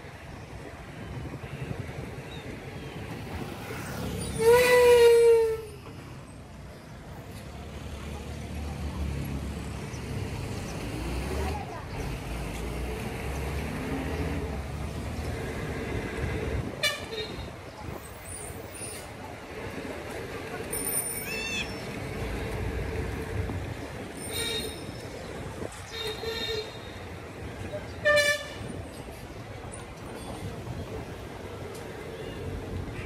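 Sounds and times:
vehicle horn honking: 16.8s - 17.5s, 25.9s - 27.0s, 28.0s - 28.7s.

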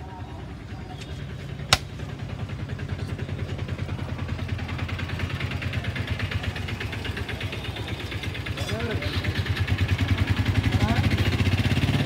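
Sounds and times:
auto-rickshaw engine idling: 0.0s - 12.0s.

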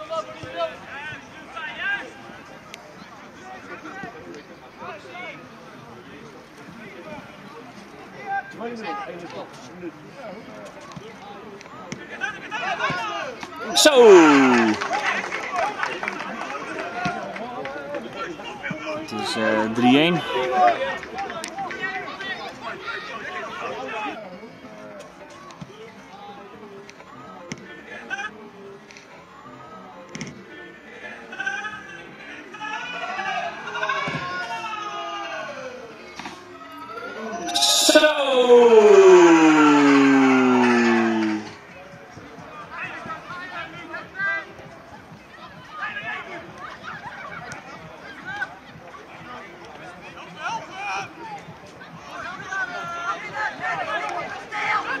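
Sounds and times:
players shouting and calling: 11.9s - 15.2s, 18.3s - 24.2s, 31.6s - 41.7s
cheering: 12.5s - 18.4s, 19.1s - 23.8s, 32.5s - 35.9s, 36.8s - 41.6s
loud falling cry: 13.7s - 14.8s, 37.1s - 41.6s.

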